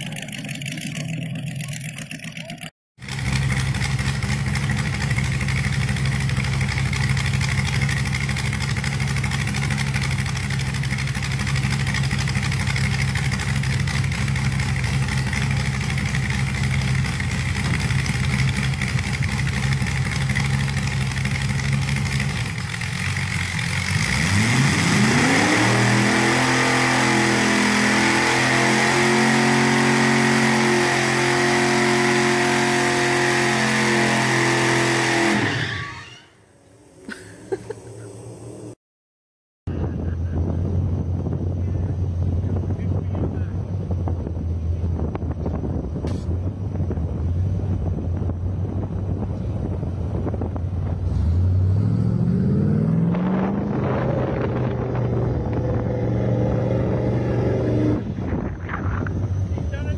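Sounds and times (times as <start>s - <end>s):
loud engine running: 0.0s - 36.1s, 39.7s - 59.9s.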